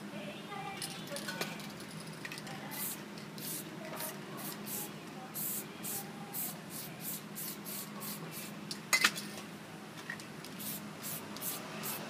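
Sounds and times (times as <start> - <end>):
spray can hissing bursts: 2.7 - 8.5, 10.5 - 12.0.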